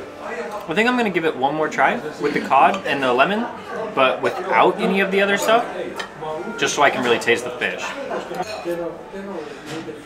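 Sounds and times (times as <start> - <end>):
voices talking: 0.0 - 10.0
tableware clinking on plate: 5.3 - 7.3.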